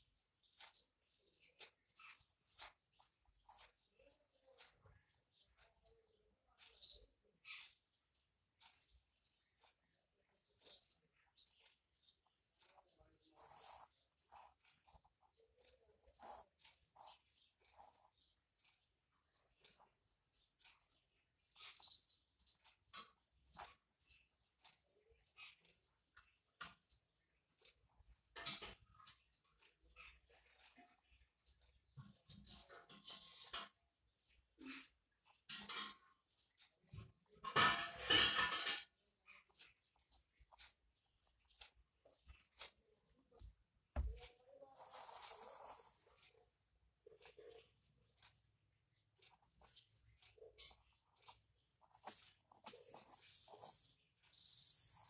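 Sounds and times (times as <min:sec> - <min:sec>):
ballpoint pen scratching on paper: 0:12.4 - 0:18.3, 0:50.6 - 0:55.0.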